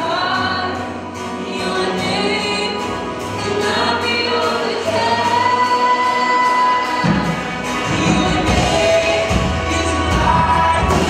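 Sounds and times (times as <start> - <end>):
crowd singing along: 0.0 - 11.0
worship band playing: 0.0 - 11.0.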